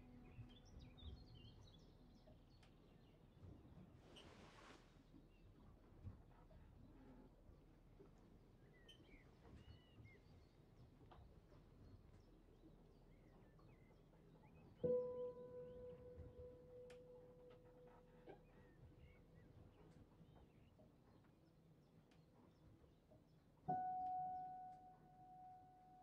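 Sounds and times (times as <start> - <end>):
piano note: 14.8 - 18.4, 23.7 - 26.0.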